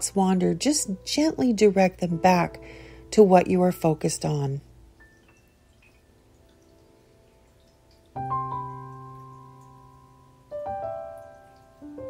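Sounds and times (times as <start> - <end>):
soft meditation music: 0.0 - 12.0.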